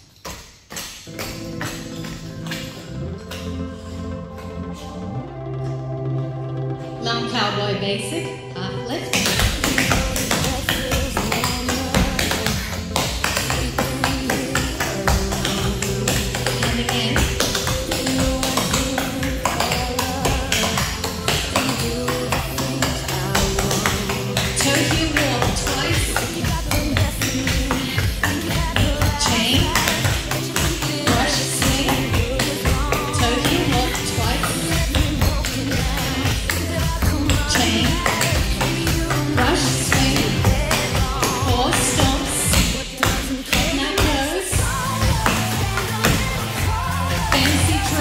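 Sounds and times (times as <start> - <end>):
pop song with steady beat: 0.0 - 48.0.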